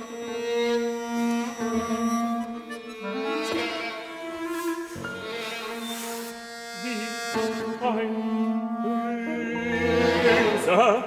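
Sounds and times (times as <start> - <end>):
bowed strings: 0.0 - 11.0
piano chords: 0.0 - 11.0.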